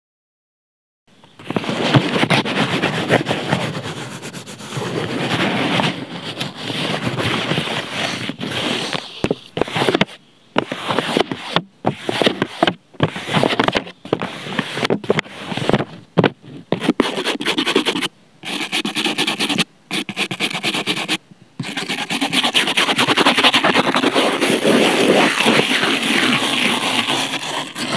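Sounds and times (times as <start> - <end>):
fingertips rubbing paper: 1.5 - 27.9.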